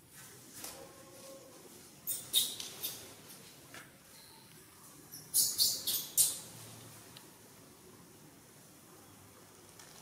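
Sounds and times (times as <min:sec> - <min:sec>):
baby monkey squeaking: 0:02.0 - 0:03.0, 0:05.2 - 0:06.4.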